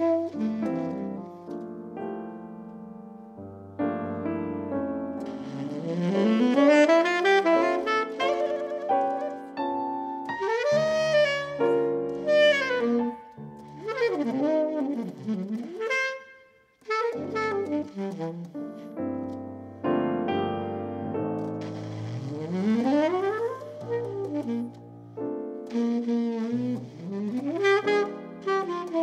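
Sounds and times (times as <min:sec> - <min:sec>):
saxophone melody: 0:00.0 - 0:02.1, 0:05.1 - 0:19.4, 0:20.3 - 0:29.0
piano chords: 0:00.0 - 0:16.2, 0:16.8 - 0:29.0
bass notes: 0:19.8 - 0:25.1.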